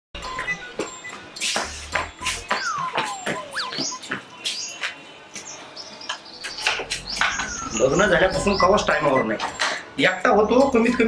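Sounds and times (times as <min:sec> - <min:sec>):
birds chirping: 0:00.2 - 0:11.0
man speaking: 0:07.7 - 0:11.0.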